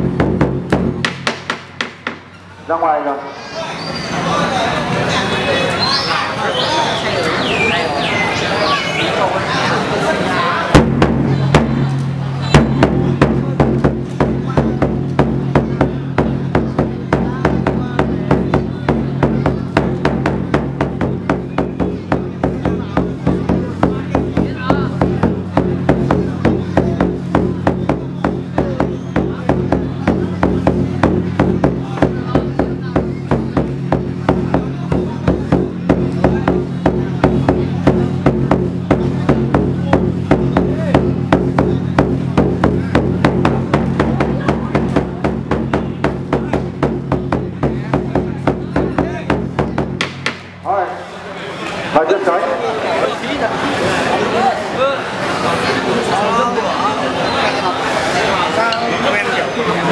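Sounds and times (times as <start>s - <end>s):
rapid drumbeats: 0.0s - 2.3s, 10.7s - 50.8s
heavy drum strikes: 0.0s - 2.4s, 10.7s - 50.7s.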